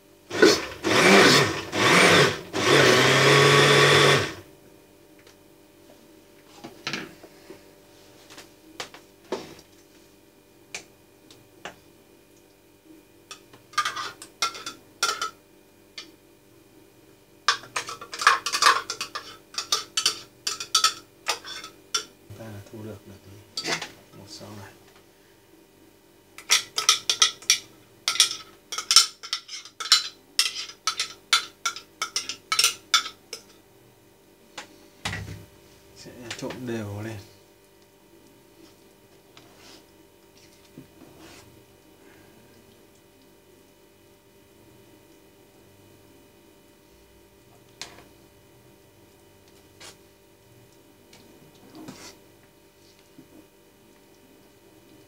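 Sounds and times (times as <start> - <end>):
electric blender running: 0.3 - 4.5.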